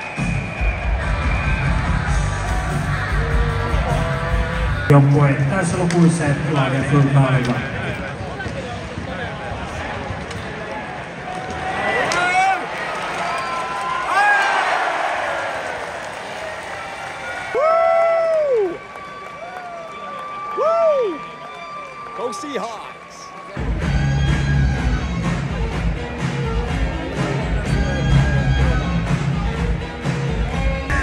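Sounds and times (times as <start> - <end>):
crowd cheering and applauding: 0.0 - 4.9, 9.2 - 31.0
loud bass-heavy music: 0.3 - 5.0, 23.6 - 31.0.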